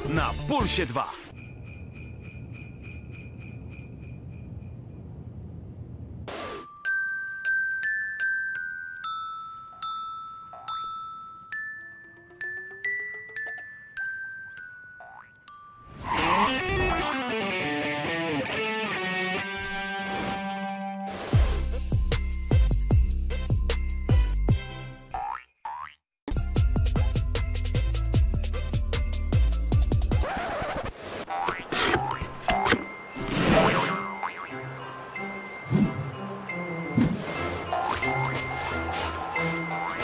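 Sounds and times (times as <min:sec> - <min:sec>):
glockenspiel note ringing: 0:06.3 - 0:16.1, 0:32.9 - 0:40.0.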